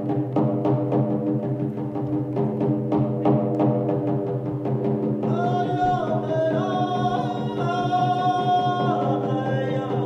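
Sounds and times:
men singing long notes: 5.2s - 10.0s.

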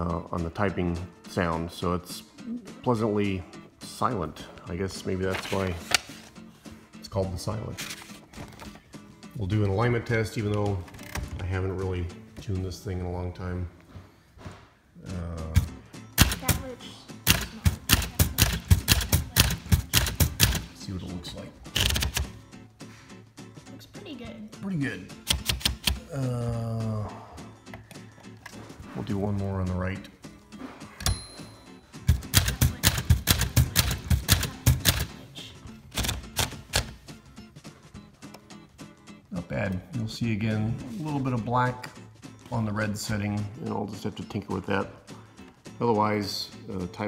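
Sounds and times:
manual typewriter typing: 16.2s - 16.6s, 17.3s - 20.8s, 21.7s - 22.3s, 25.2s - 26.0s, 32.1s - 35.2s, 35.9s - 37.0s.

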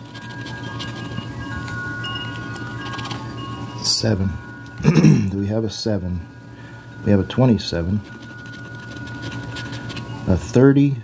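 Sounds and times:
low hum: 0.0s - 10.6s
soft chime-like tones: 0.1s - 11.0s.

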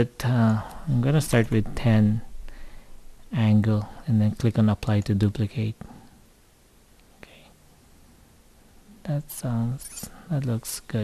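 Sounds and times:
soft breath: 2.4s - 3.1s.

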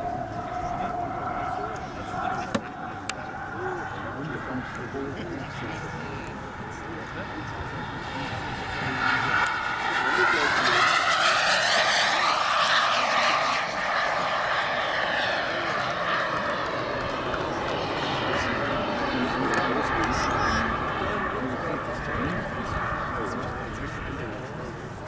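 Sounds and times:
model jet engine whine: 0.0s - 25.0s.

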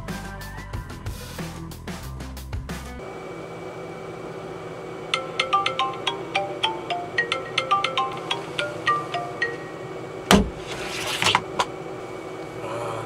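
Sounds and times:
phone alarm marimba melody: 5.2s - 10.1s
loud thump: 10.3s - 10.6s.

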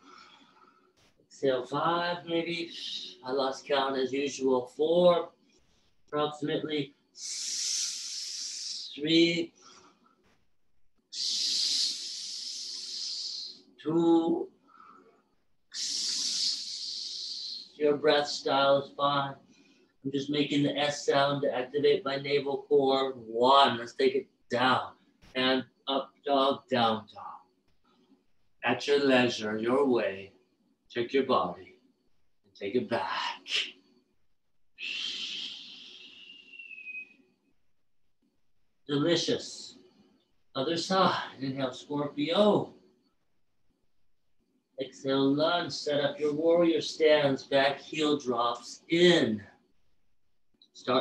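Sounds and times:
hiss breathed through teeth: 7.2s - 8.9s, 11.2s - 13.5s.

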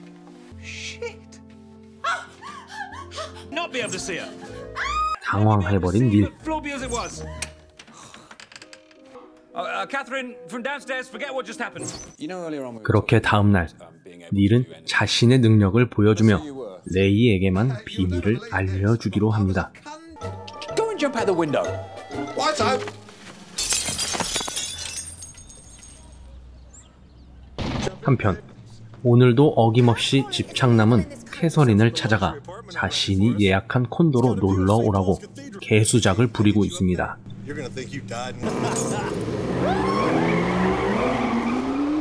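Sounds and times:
window pane smashing: 23.4s - 26.0s
glass pieces tinkling: 23.6s - 26.3s
sports car engine accelerating: 38.3s - 42.0s
tyre squeal: 39.6s - 41.8s.

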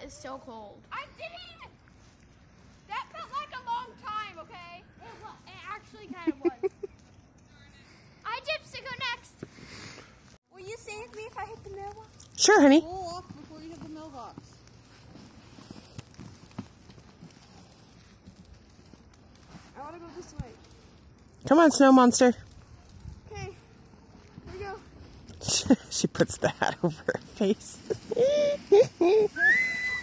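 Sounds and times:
crunching and knocking in snow: 13.1s - 20.6s
high-pitched wordless cries: 27.9s - 30.0s.

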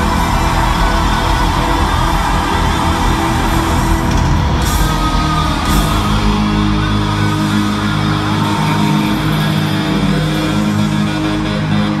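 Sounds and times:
live band music: 0.0s - 10.4s
electric guitar: 0.0s - 12.0s.

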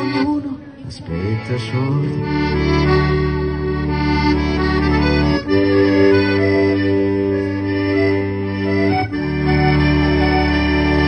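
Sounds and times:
piano accordion playing chords: 0.0s - 11.0s.

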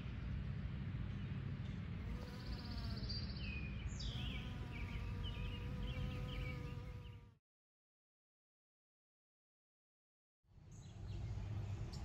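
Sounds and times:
bumblebee buzzing: 4.0s - 7.4s.

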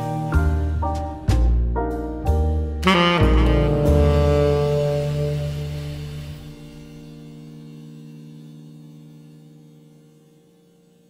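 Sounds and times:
jazz ballad: 0.0s - 8.3s
held hum-like chord: 0.0s - 11.0s.

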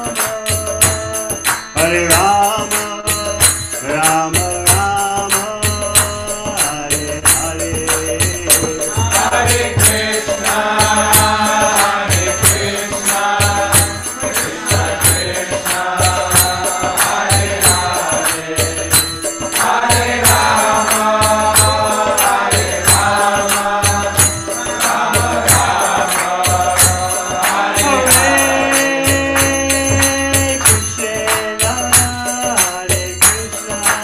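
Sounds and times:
man chanting: 0.0s - 12.6s, 20.4s - 34.0s
hand cymbals: 0.0s - 34.0s.

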